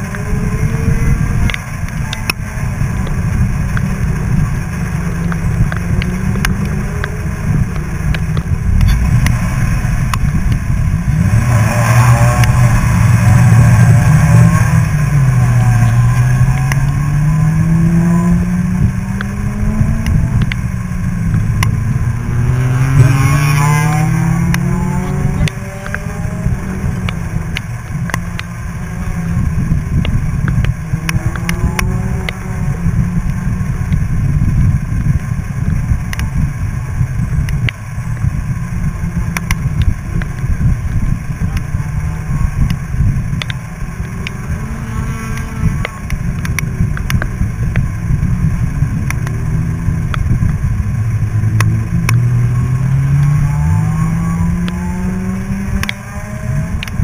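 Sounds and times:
sports car engine accelerating: 0.0 - 57.0
wind and tyre noise: 0.0 - 57.0.

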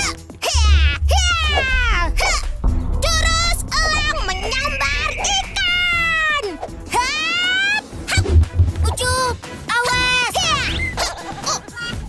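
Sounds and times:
low thuds: 0.4 - 9.4.

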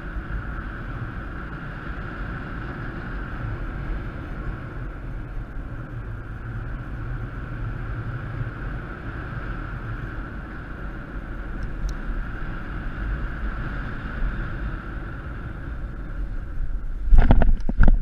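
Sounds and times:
wind rushing over microphone: 0.0 - 18.0.

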